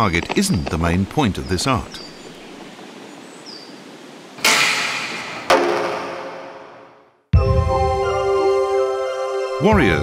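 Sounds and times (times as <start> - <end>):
faint bird chirps: 1.3 - 4.0
arrow striking target: 4.4 - 7.0.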